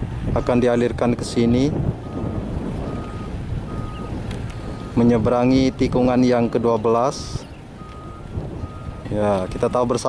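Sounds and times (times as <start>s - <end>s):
wind buffeting microphone: 0.0s - 10.0s
faint high beep: 2.9s - 4.1s.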